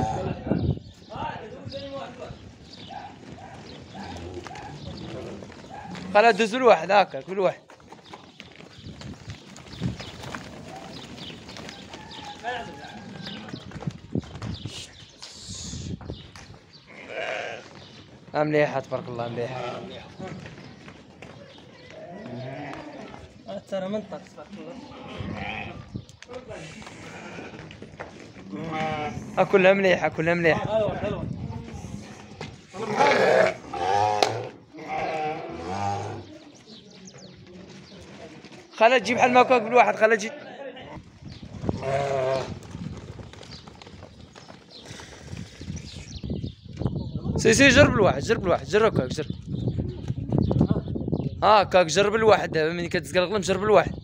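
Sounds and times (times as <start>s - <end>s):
hooves scuffing on dirt: 0.9s - 29.2s, 31.4s - 33.0s, 36.0s - 40.0s, 41.0s - 46.9s
sheep bleating: 16.9s - 17.7s, 21.9s - 23.2s, 24.8s - 25.9s, 26.8s - 27.7s, 28.4s - 29.4s, 32.7s - 36.3s, 41.7s - 42.6s.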